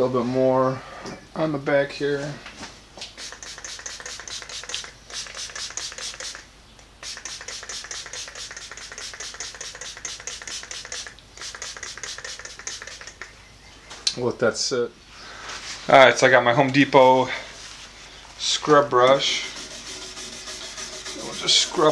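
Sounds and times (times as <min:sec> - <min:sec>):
spray bottle hissing squirts: 0:03.1 - 0:13.4, 0:19.2 - 0:21.9.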